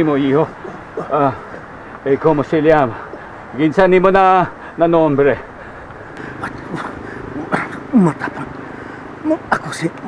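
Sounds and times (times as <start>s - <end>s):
man groaning in pain: 0.4s - 1.7s.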